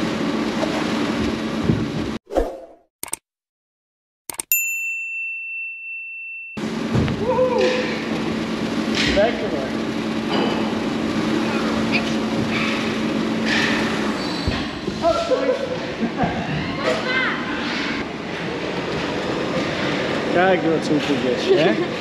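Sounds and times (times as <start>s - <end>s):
steady running noise with hum: 0.0s - 2.2s, 6.6s - 22.0s
steady high ding: 4.5s - 6.7s.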